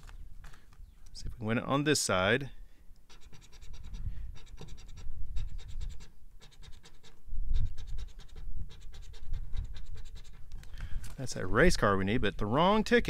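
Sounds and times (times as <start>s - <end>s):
coin scratching lottery ticket: 3.1s - 10.6s.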